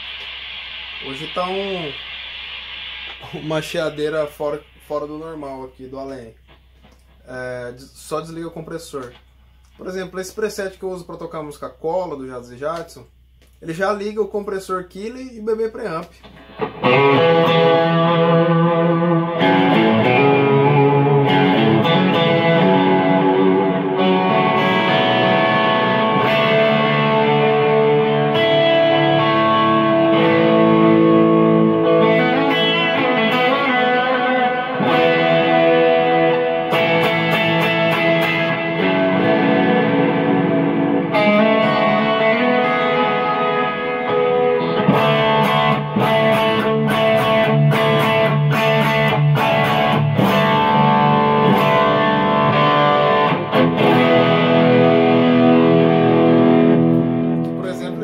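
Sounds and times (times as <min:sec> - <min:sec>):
overdriven electric guitar: 0:00.0 - 0:04.9, 0:15.9 - 0:58.0
choppy guitar strumming: 0:15.8 - 0:58.0.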